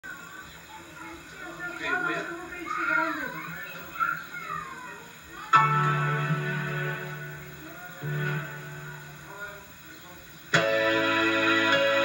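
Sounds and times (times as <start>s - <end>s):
voices through television speaker: 0.0s - 10.8s
instrument chord ringing: 5.5s - 9.8s, 10.5s - 12.0s.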